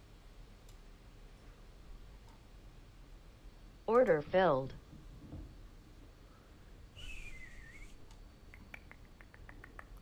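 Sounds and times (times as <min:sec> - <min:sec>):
faint falling whistle: 0:07.0 - 0:08.0.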